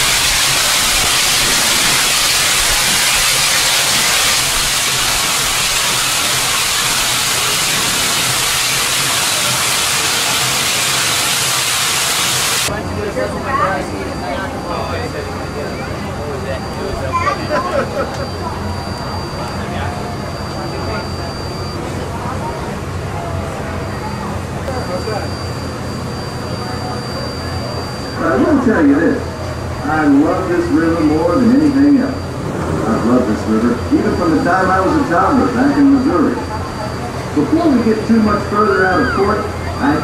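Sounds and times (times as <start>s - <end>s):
low machinery hum: 0.0s - 40.0s
faint passenger chatter: 12.7s - 40.0s
loud voices speaking: 12.7s - 40.0s.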